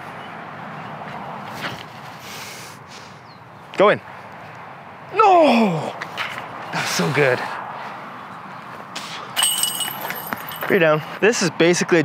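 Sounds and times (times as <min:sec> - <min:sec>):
disc hitting metal chains: 0:09.4 - 0:10.7.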